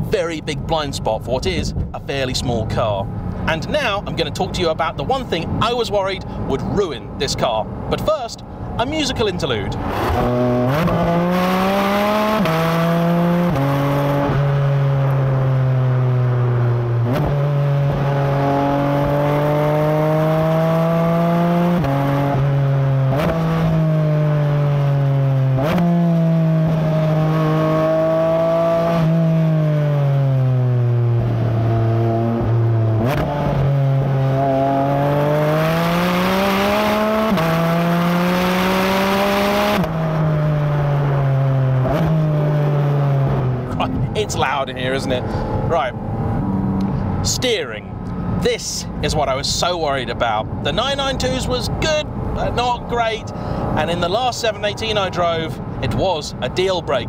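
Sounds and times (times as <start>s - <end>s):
car engine revving: 9.7s - 57.0s.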